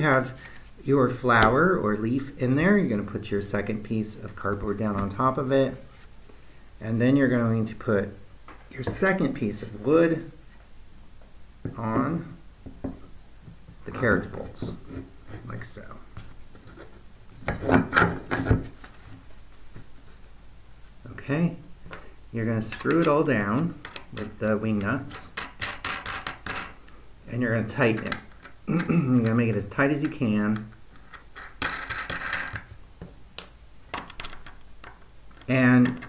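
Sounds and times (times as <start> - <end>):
wood knocking and scraping: 11.6 - 15.6, 16.2 - 19.9.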